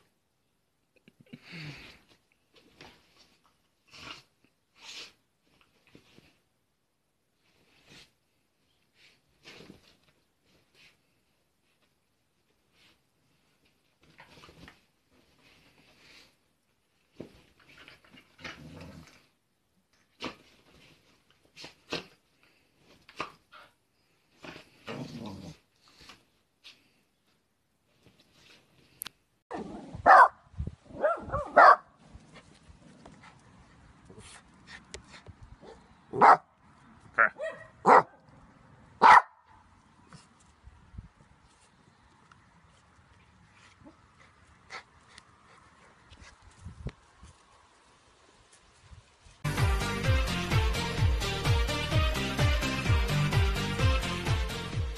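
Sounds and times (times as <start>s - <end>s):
bedsheet rustling: 7.3s - 19.0s
dog growling: 24.9s - 25.6s
small dog barking: 29.5s - 31.9s, 35.6s - 36.5s, 37.2s - 38.2s, 39.0s - 39.6s.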